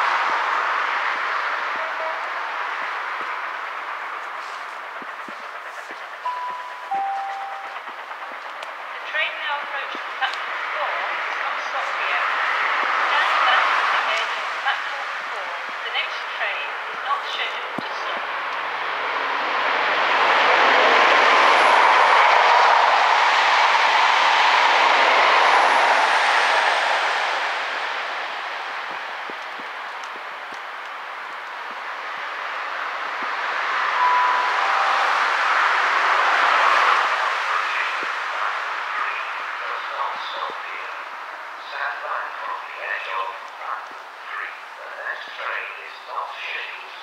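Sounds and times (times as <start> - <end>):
train rail noise: 0.0 - 47.0
two-note tone: 6.3 - 7.9, 34.0 - 35.8.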